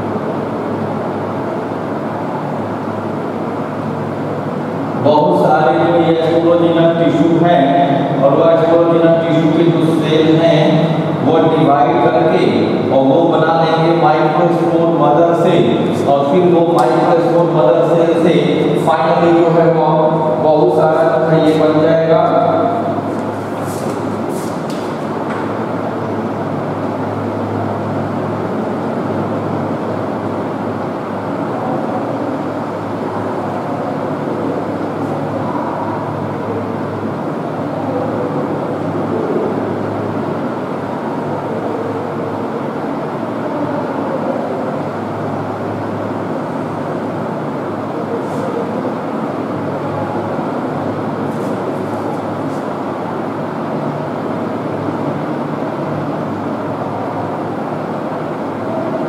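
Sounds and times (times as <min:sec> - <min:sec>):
mechanical rumble with low hum: 0:00.0 - 0:59.0.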